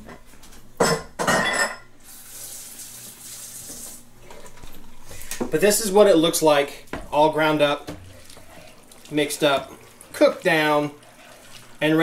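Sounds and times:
dishes clattering in a sink: 0:00.8 - 0:01.9
kitchen tap running: 0:02.0 - 0:04.0, 0:05.2 - 0:12.0.

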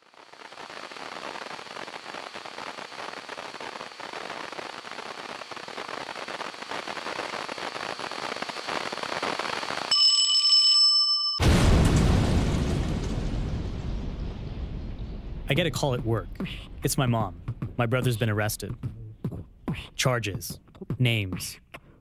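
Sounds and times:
crackling hiss: 0:00.0 - 0:09.9
faint high whine: 0:00.0 - 0:11.2
bell-like ringing tone: 0:09.9 - 0:11.5
deep boom: 0:11.4 - 0:19.5.

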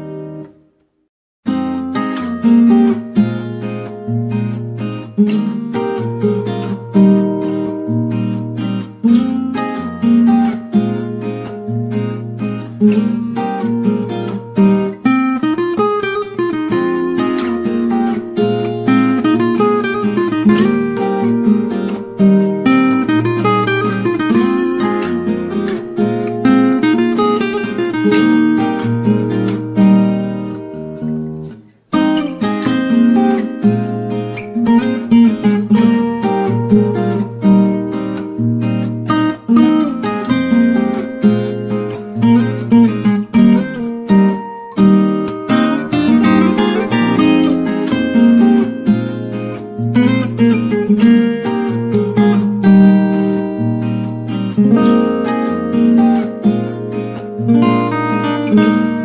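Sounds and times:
acoustic guitar music: 0:00.0 - 0:59.0.

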